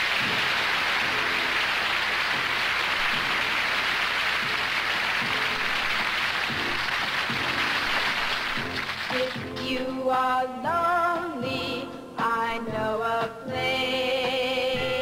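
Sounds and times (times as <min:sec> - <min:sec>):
studio audience applauding: 0:00.0 - 0:09.6.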